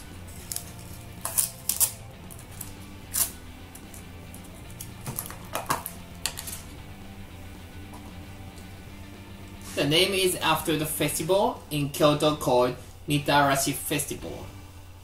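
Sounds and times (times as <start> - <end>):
quiet background music: 0.0 - 15.0.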